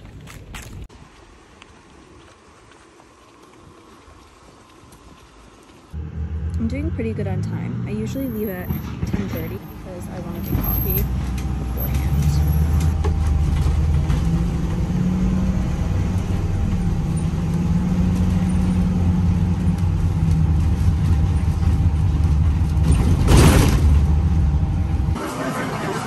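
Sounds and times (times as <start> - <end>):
bus engine droning: 5.9 - 26.0.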